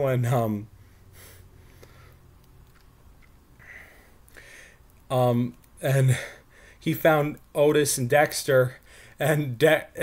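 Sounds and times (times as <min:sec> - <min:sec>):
low room hum: 0:00.0 - 0:10.0
person sniffing: 0:01.0 - 0:02.2.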